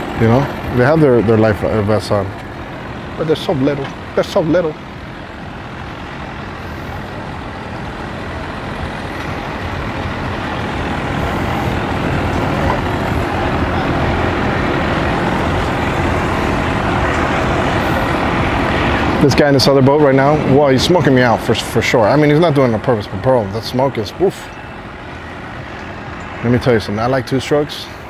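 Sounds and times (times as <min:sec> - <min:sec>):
outboard boat motor running: 0:00.0 - 0:28.0.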